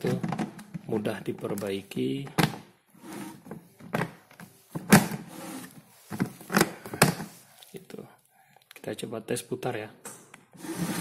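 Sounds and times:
hard plastic knocks and clatter: 0.0 - 0.9.

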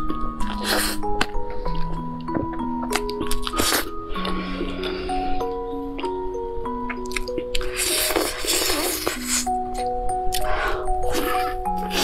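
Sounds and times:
wet mouth sounds of eating: 0.0 - 5.0, 6.9 - 12.0
background music with held notes: 0.0 - 12.0.

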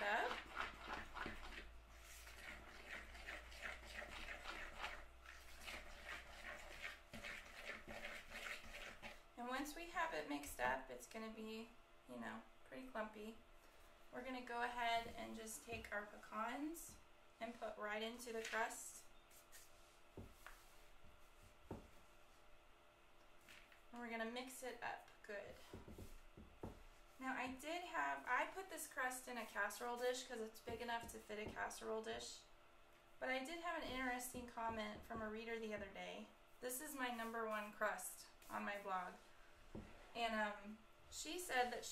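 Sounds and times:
fork scraping plastic bowl: 0.0 - 9.2.

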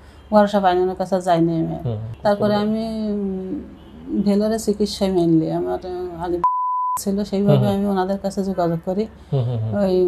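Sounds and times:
woman talking: 0.3 - 10.0.

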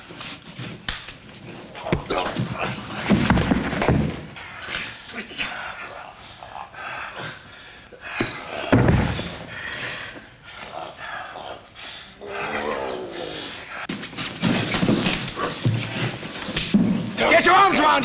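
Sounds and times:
wrestlers grunting and growling: 1.4 - 17.2
heavy thud: 8.7 - 9.5.

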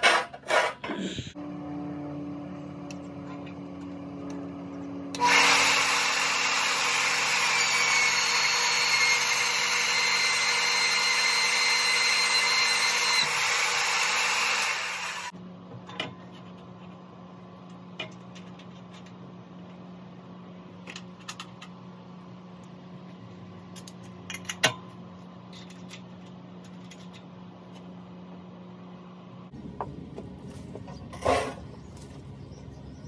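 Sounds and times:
drill cutting steel with whine: 5.1 - 15.3
drill motor running: 5.2 - 15.3
low steady hum: 15.3 - 33.0.

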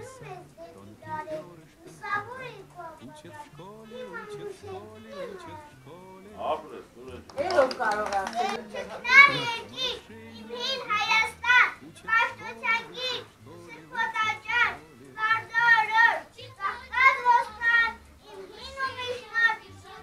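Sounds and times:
young child speaking: 0.0 - 5.8, 8.2 - 10.0, 10.6 - 13.3, 14.0 - 20.0.

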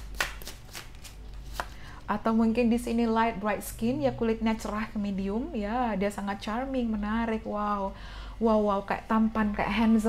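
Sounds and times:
playing cards being shuffled: 0.0 - 1.8.

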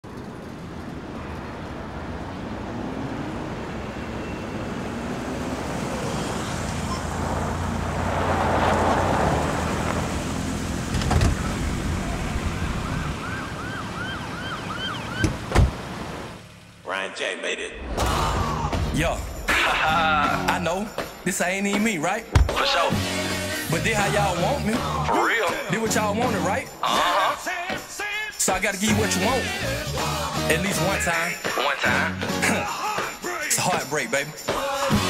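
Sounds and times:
vehicle engine and tyres: 0.0 - 16.9
siren yelping: 11.4 - 15.4.

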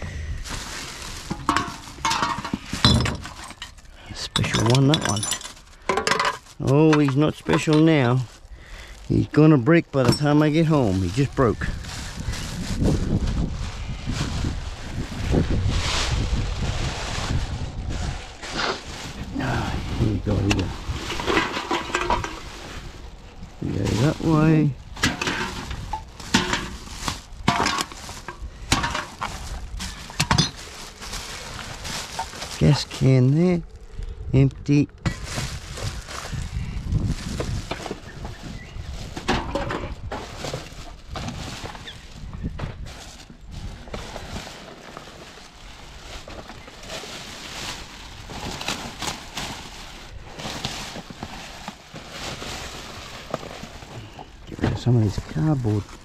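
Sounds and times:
plastic bags rustling: 0.0 - 56.0
cans and bottles clinking: 1.1 - 8.0, 20.5 - 22.5, 25.0 - 30.7.

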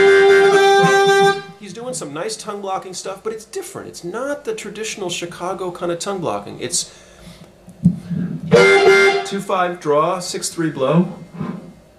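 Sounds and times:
harmonica long note: 0.0 - 1.6, 8.4 - 9.5.

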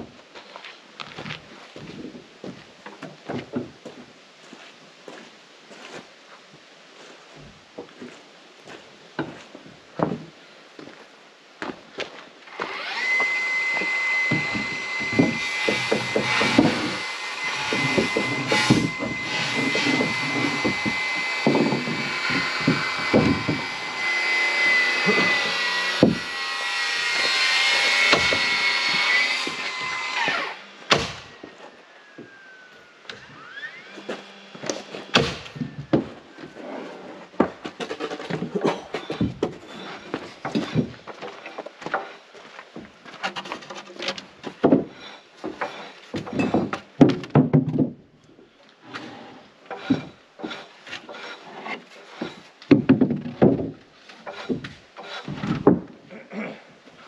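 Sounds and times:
power tool whining: 12.5 - 34.9
wooden knocks: 17.6 - 24.0, 37.4 - 42.2, 42.8 - 48.0, 52.2 - 56.0.

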